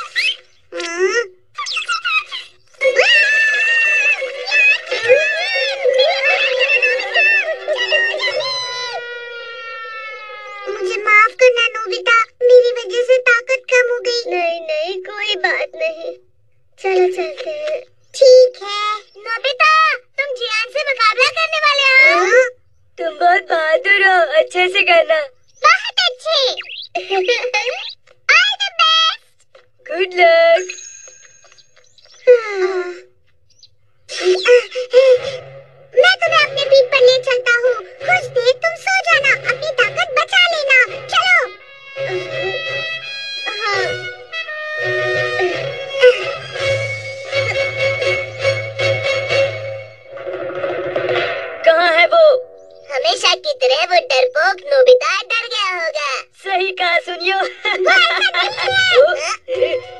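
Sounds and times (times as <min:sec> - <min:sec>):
cartoon voices straining cries: 0:00.0 - 0:12.4, 0:34.1 - 0:35.4.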